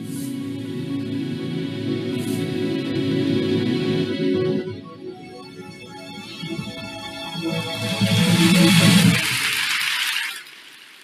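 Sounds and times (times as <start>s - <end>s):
intro beat and bass: 0.0s - 10.2s.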